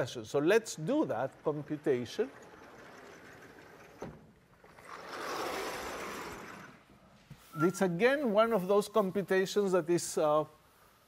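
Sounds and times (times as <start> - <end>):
blackboard panels sliding rumble: 0.7 - 6.9.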